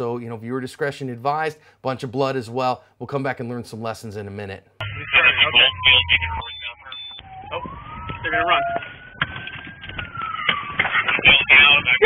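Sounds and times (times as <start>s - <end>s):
police siren wailing: 4.8s - 12.0s.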